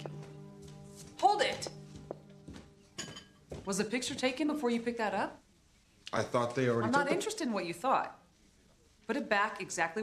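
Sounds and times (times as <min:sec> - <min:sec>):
glass clinking and ringing: 0:03.0 - 0:03.4.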